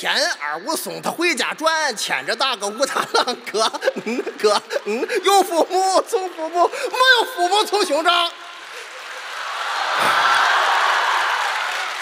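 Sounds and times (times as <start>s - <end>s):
audience applauding: 2.2s - 12.0s.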